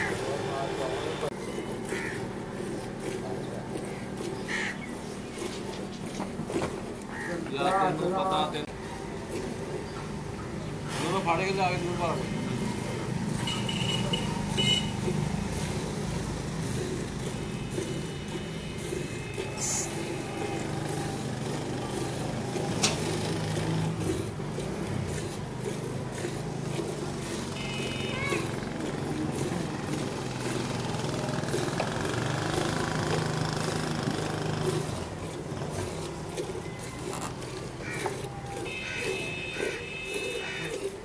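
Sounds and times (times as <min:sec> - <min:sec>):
steady low engine drone: 0:12.0 - 0:41.0
milk squirting into steel bucket: 0:15.0 - 0:41.0.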